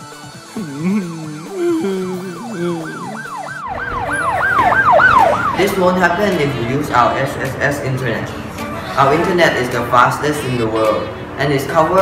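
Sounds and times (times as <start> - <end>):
background music: 0.0 - 12.0
siren yelping: 0.6 - 5.7.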